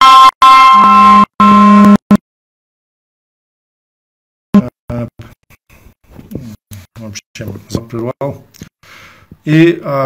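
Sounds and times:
loud electronic tone blasts: 0:00.0 - 0:02.2.

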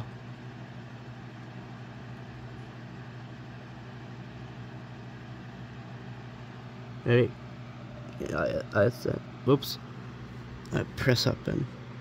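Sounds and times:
steady low room hum: 0:00.0 - 0:12.0.

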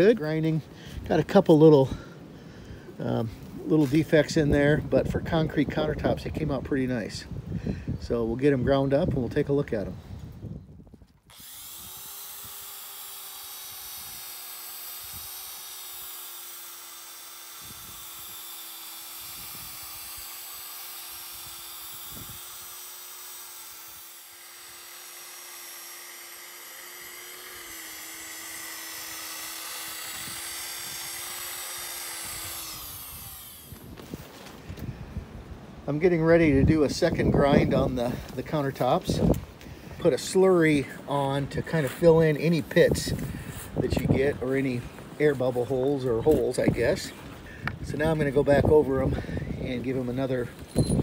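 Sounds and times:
electric grinder motor: 0:11.3 - 0:34.2.

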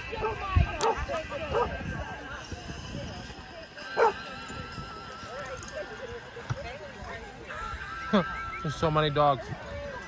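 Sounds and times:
dogs barking and yipping: 0:00.0 - 0:02.1, 0:03.9 - 0:04.3
crowd chatter: 0:00.0 - 0:10.0.

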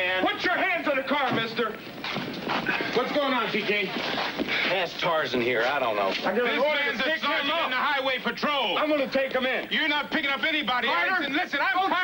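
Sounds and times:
people talking: 0:00.0 - 0:01.8, 0:02.7 - 0:12.0.

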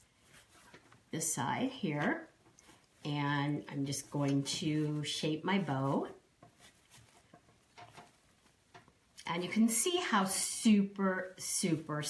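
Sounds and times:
burlap and ribbon rustling: 0:00.0 - 0:12.0.

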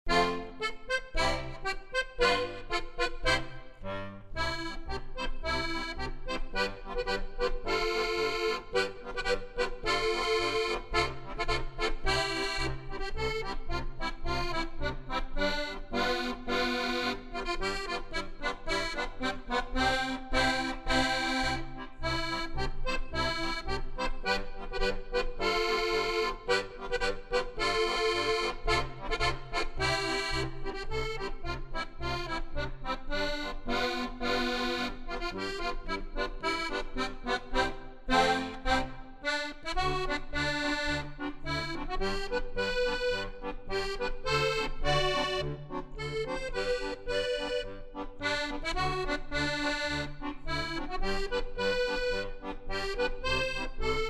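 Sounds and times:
solo accordion folk tune: 0:00.0 - 0:54.0.

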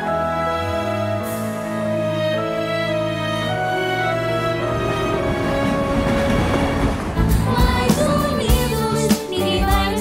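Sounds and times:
background music: 0:00.0 - 0:10.0
freight train rolling on rails: 0:01.7 - 0:09.7.

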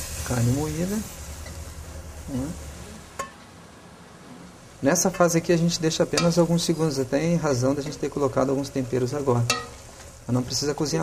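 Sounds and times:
meat sizzling in a pot: 0:00.0 - 0:03.4, 0:04.6 - 0:11.0.

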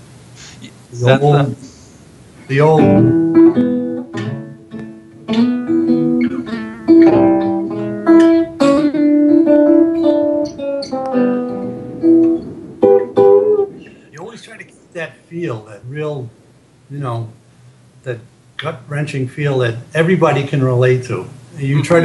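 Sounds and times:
blues guitar chords and notes: 0:02.4 - 0:15.3.

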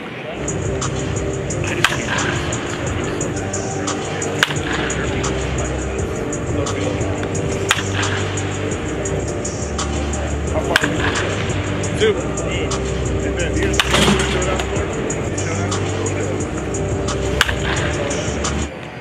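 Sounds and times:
baseball bat cracking ball: 0:00.8 - 0:05.5, 0:06.6 - 0:10.1, 0:10.7 - 0:11.6, 0:13.6 - 0:14.9, 0:17.1 - 0:18.7.

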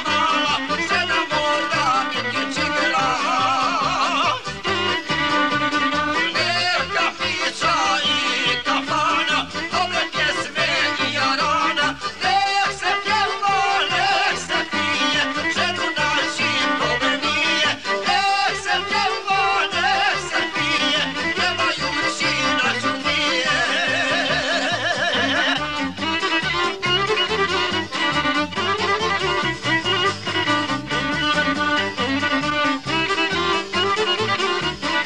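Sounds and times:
folk music with ornamented melody: 0:00.0 - 0:35.0
pulsing bass: 0:00.0 - 0:35.0.

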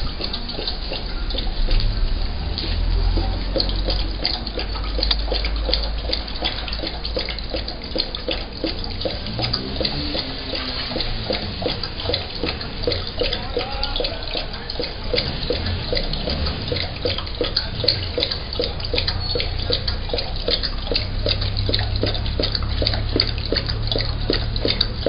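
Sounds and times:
dog lapping from a plastic bowl: 0:00.0 - 0:25.0.

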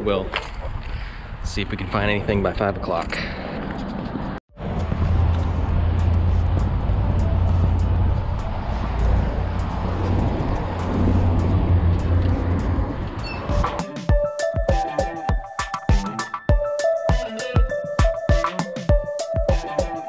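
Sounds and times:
low outdoor rumble: 0:04.6 - 0:13.3
background music with a beat: 0:04.8 - 0:20.0.

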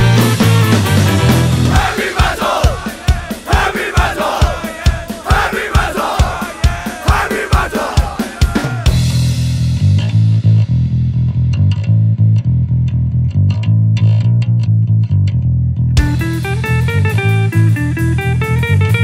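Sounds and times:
electric guitar fast riff: 0:00.0 - 0:03.7, 0:16.0 - 0:19.0
drums: 0:00.0 - 0:12.4, 0:16.0 - 0:19.0
bass guitar riff: 0:00.0 - 0:19.0.

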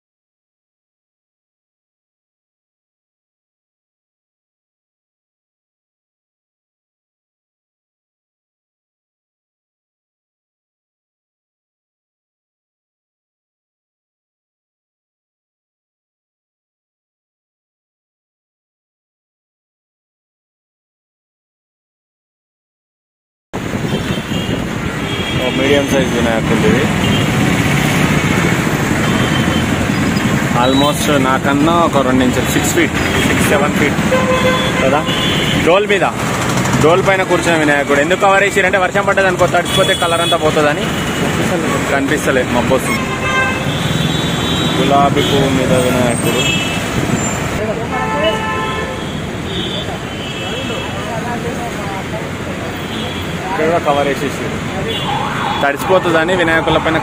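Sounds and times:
wind on microphone: 0:23.6 - 0:30.6
passing road noise: 0:23.6 - 0:57.0
vehicle horns: 0:23.7 - 0:38.1, 0:39.3 - 0:51.2, 0:52.6 - 0:53.8, 0:54.8 - 0:57.0.

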